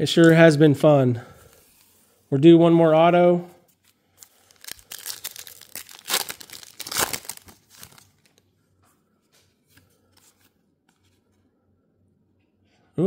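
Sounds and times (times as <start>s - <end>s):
wrapper tearing and crinkling: 4.0s - 8.4s.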